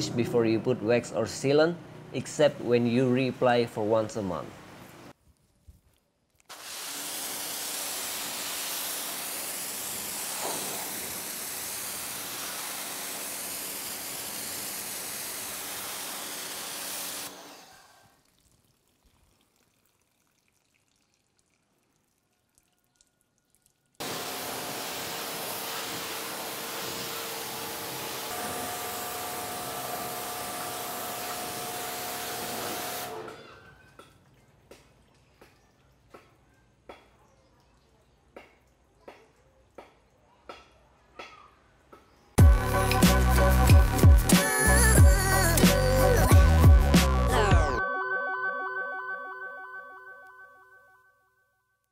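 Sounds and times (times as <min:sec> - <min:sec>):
water spraying from a hose: 0:06.4 - 0:23.0, 0:23.8 - 0:33.2.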